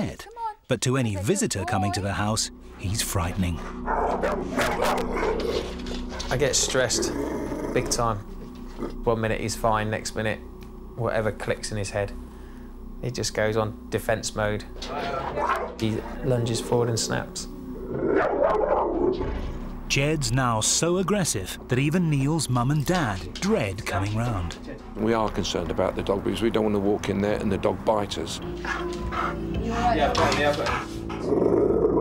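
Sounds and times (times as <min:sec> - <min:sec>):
dog barking aggressively: 0:03.8 - 0:05.7.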